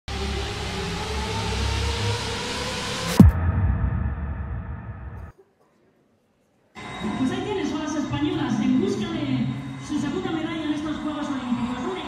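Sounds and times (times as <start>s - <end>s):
dense wash of noise: 0.2s - 5.3s
faint rising tones: 0.2s - 5.3s
low pulsing rumble: 0.2s - 5.3s.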